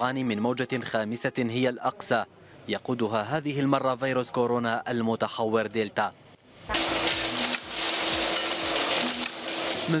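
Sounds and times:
machinery hum: 6.5 - 10.0.

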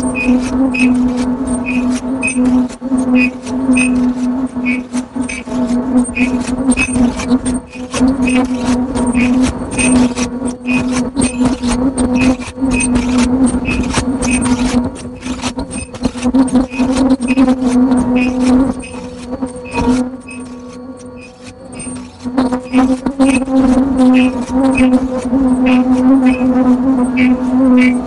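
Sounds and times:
machine hum: 0.0 - 28.0
rapid mechanical clicking: 0.0 - 28.0.

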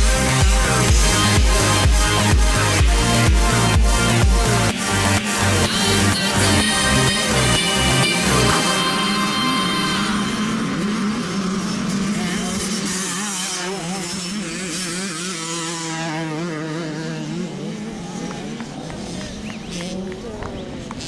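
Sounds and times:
motocross bike engine running: 0.0 - 21.0.

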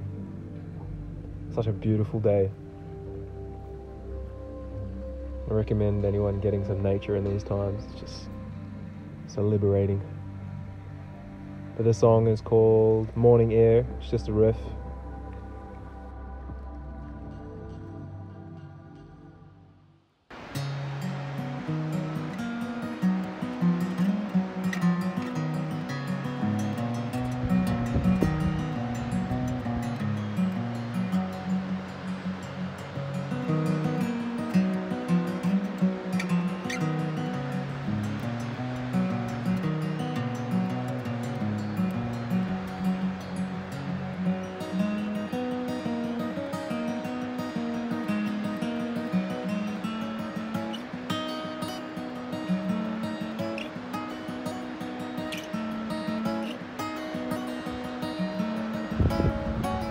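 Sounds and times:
fingerstyle acoustic guitar: 20.3 - 59.9.

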